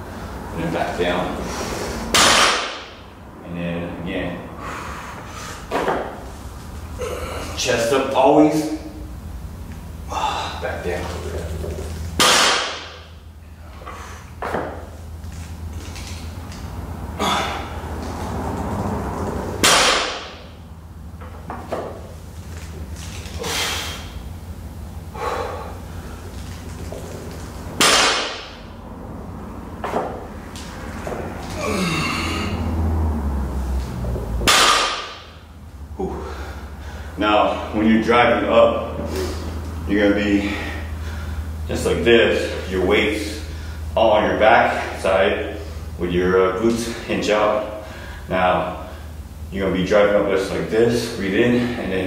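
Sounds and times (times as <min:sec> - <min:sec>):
barbell thudding on rubber mat: 0:34.4 - 0:35.4.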